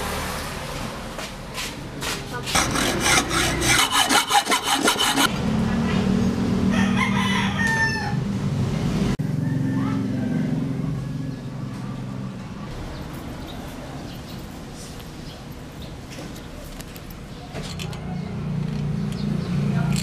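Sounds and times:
hand tool rasping metal: 2.5s - 5.3s
rooster crowing: 6.7s - 8.3s, 9.2s - 11.6s.

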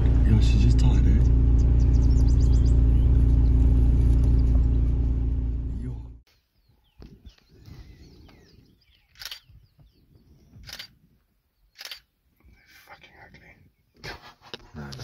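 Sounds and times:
faint low rumble: 0.0s - 6.2s
camera shutter firing: 9.2s - 9.5s, 10.6s - 10.9s, 11.8s - 12.1s.

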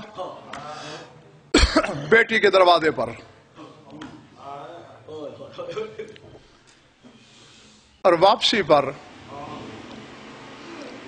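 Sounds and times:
faint breathing: 0.6s - 1.2s, 6.4s - 8.0s
man coughing: 1.5s - 2.2s.

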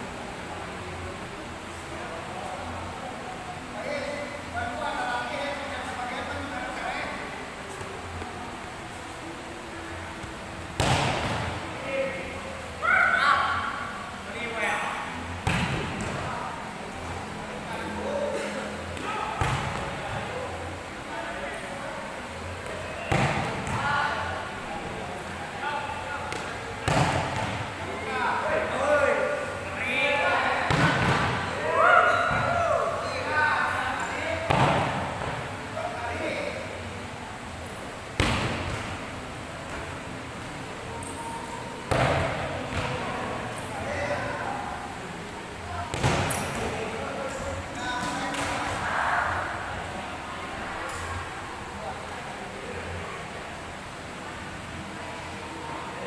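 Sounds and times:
volleyball smack: 10.8s - 11.5s, 15.4s - 16.2s, 19.4s - 19.9s, 26.3s - 27.6s, 30.7s - 31.4s, 38.2s - 38.9s, 45.9s - 46.4s.

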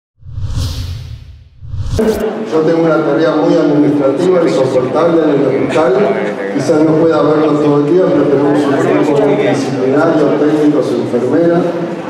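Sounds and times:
low rumble: 0.2s - 2.2s
whooshes: 0.2s - 2.4s.

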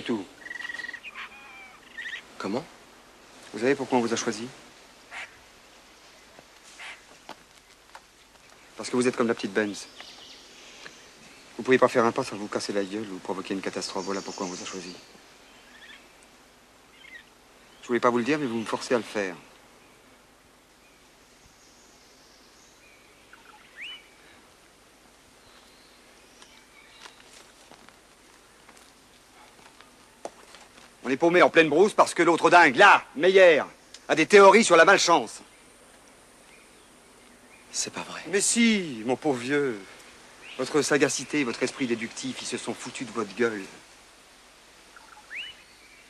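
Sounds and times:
bird chirps: 0.0s - 2.3s, 20.9s - 24.3s, 44.9s - 46.0s
soft bird chirps: 0.0s - 2.3s, 5.1s - 11.8s, 13.4s - 20.1s, 20.7s - 24.4s, 25.3s - 27.5s, 44.9s - 46.0s
steady background hiss: 0.0s - 46.0s
bird whistled call: 45.0s - 45.7s.

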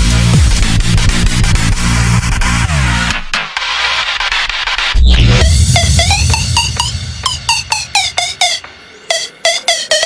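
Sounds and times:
squeaky synth notes dropping in pitch: 5.0s - 10.0s.

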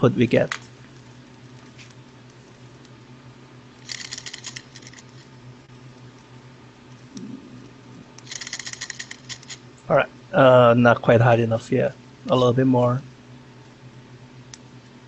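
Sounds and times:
faint steady hum: 0.0s - 15.0s
light mechanical clattering: 3.8s - 5.3s, 8.2s - 9.7s.

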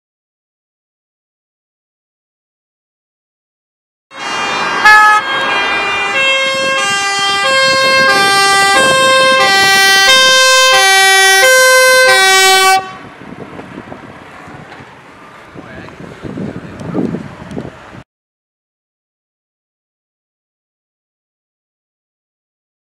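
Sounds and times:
two-tone siren: 4.1s - 13.1s
road and wind noise: 4.1s - 18.1s.

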